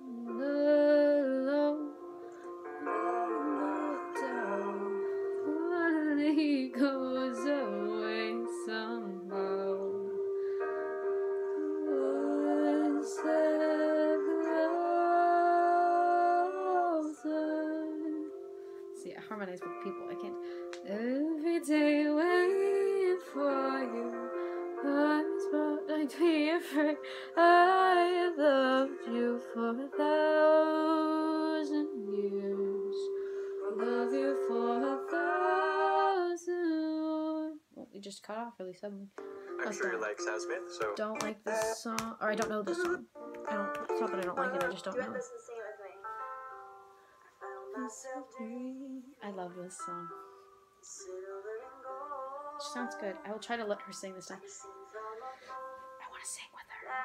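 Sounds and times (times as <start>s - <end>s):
voices singing a melody: 11.6s - 17.5s, 39.6s - 45.4s.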